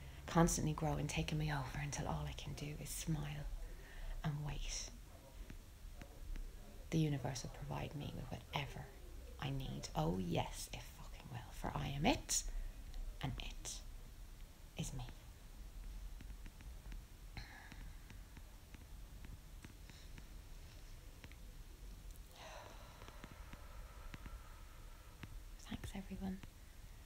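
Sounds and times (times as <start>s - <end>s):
woman whispering: 0.2s - 5.0s, 6.9s - 13.9s, 14.8s - 15.2s, 25.6s - 26.5s
woman half-whispering: 25.6s - 26.4s.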